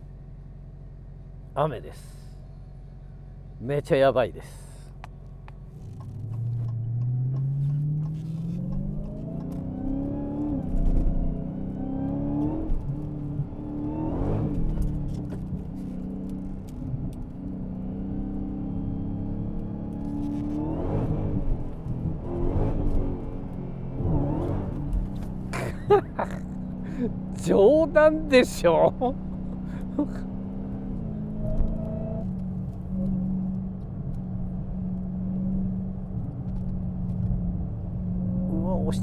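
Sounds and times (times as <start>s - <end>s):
car engine accelerating hard: 5.7s - 39.0s.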